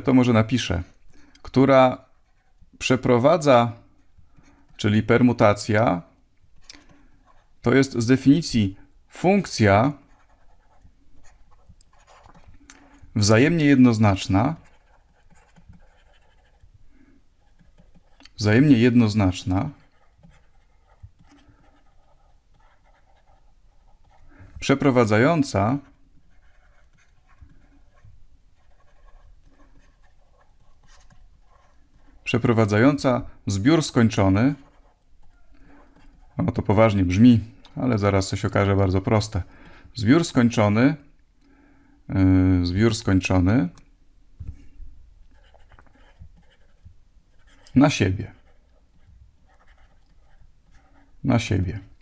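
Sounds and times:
stylus scratching on graphics tablet: 0:09.6 - 0:16.7, 0:17.4 - 0:37.2, 0:45.3 - 0:51.2.

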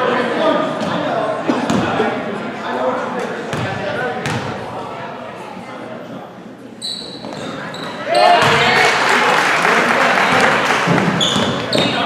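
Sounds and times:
voices echoing in hall: 0:00.0 - 0:12.0
referee's whistle: 0:06.8 - 0:07.2.

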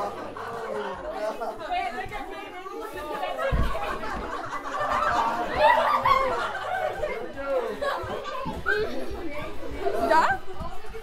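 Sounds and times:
children chattering and shouting: 0:00.0 - 0:11.0.

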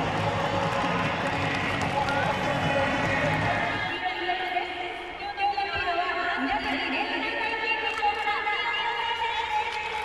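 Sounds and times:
stadium crowd roar: 0:00.0 - 0:05.1.

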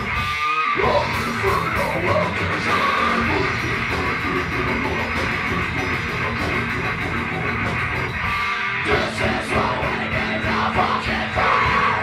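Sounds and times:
extreme metal music: 0:00.0 - 0:12.0.

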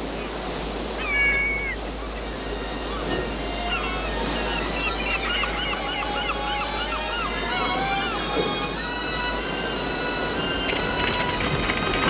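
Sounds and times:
seabirds calling: 0:00.0 - 0:12.0
surf washing: 0:00.0 - 0:12.0.

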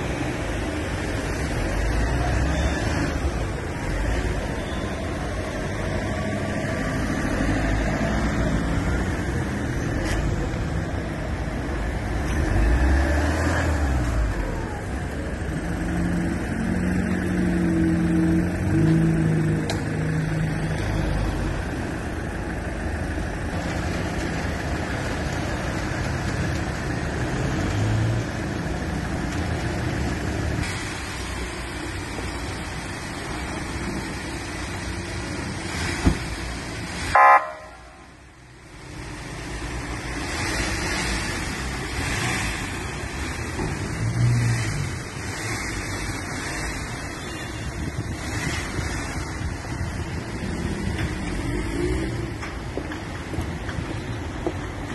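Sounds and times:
street traffic engines: 0:00.0 - 0:54.9
car horn toot: 0:37.1 - 0:38.0.

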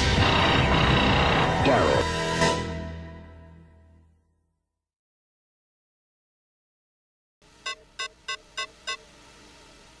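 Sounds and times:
short electronic beeps: 0:07.6 - 0:09.0.

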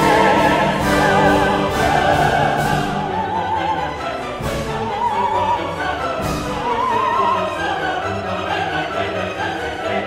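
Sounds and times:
opera singer with vibrato: 0:00.0 - 0:08.0
orchestral accompaniment: 0:00.0 - 0:10.0.

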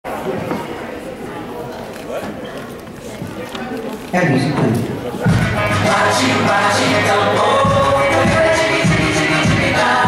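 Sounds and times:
murmur of voices in a hall: 0:00.0 - 0:10.0.

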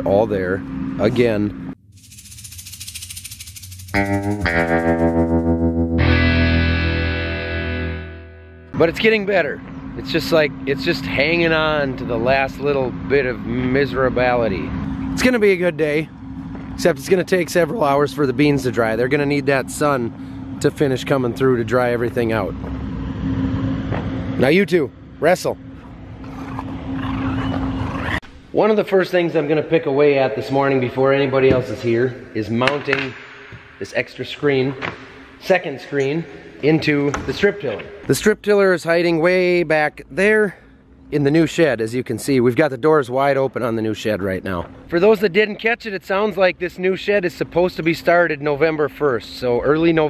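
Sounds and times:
pulsing music build: 0:02.0 - 0:08.8
distorted electric guitar chords: 0:03.9 - 0:08.8.

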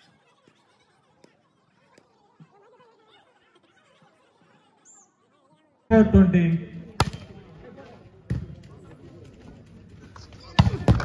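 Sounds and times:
volleyball struck with thump: 0:07.0 - 0:07.3.

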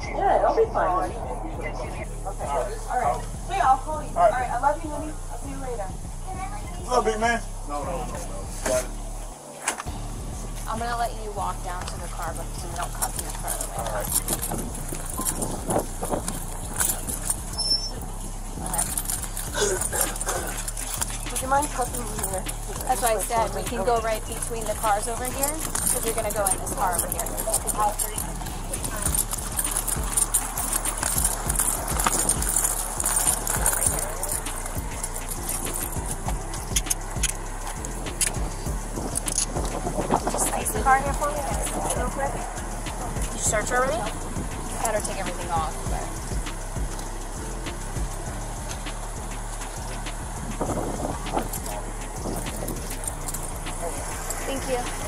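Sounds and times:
faint voices talking outdoors: 0:00.0 - 0:55.0
steady low hum: 0:00.0 - 0:55.0
footsteps on concrete: 0:11.6 - 0:55.0
gear rustling and jangling: 0:11.7 - 0:55.0
clothing rubbing on camera: 0:12.3 - 0:38.4.

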